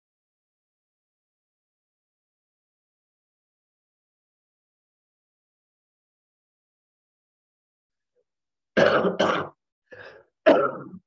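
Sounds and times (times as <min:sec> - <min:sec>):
person clearing throat: 0:08.8 - 0:11.0
person coughing: 0:08.8 - 0:11.0.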